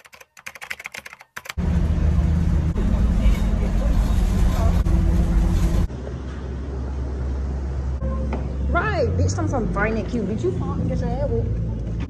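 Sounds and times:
rapid keyboard typing clicks: 0.0 - 1.6
loud steady low rumble: 1.6 - 5.9.

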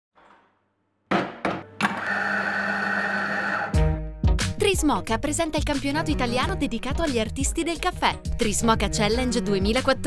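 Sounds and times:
coffee machine whirring: 1.8 - 3.8.

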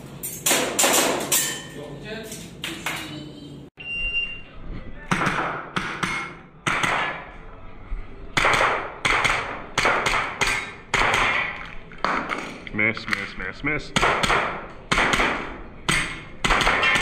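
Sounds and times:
shot timer beep: 3.8 - 4.4
handgun shots with echo: 14.0 - 17.0.

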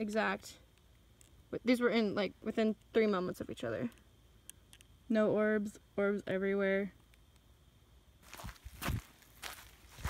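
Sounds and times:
footsteps on grass and dirt: 8.2 - 10.0.

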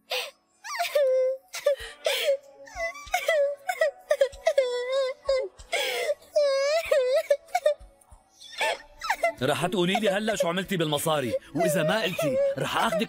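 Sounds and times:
girl crying: 0.2 - 10.4, 11.2 - 13.0
catching breaths: 5.6 - 6.3.

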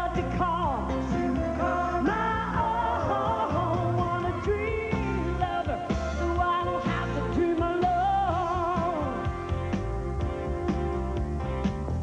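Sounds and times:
person singing: 0.0 - 9.6
bass notes: 0.0 - 12.0.

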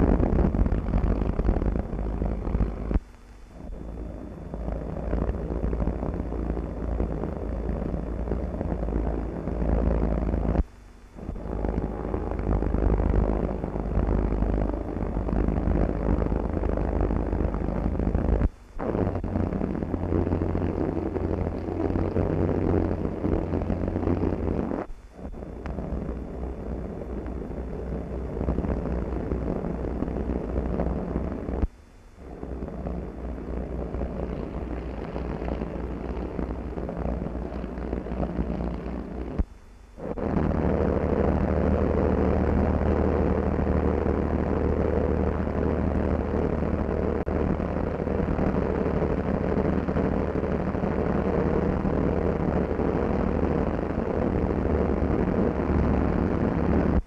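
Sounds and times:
aircraft engines droning: 11.2 - 17.8.

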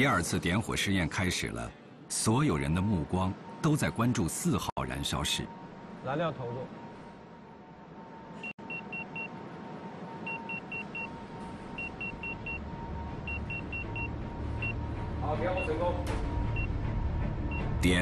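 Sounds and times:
electronic beeps: 10.2 - 11.1.

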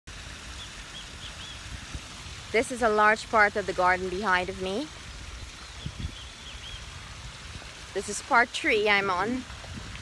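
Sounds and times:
wind rumbling on microphone: 1.3 - 10.0
bird chirps: 5.6 - 6.9.

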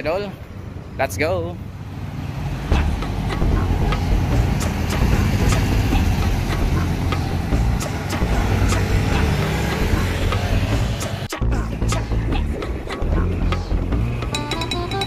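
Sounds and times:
bus diesel engine rumbling: 0.0 - 15.0
street traffic: 0.0 - 15.0.

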